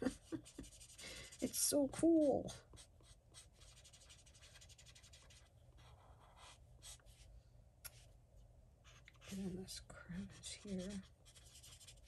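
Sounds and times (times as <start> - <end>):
marker scratching on paper: 0.2 - 1.7, 2.7 - 7.2, 10.4 - 12.0.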